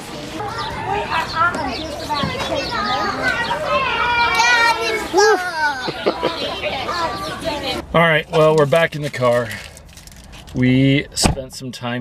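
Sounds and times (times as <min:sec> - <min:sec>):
children playing and calling out: 0:00.2 - 0:07.8.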